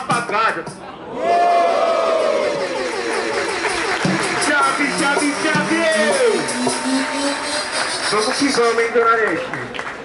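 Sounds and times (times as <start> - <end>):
hubbub of many voices: 0.0 - 10.0
crowd going ooh: 1.0 - 4.4.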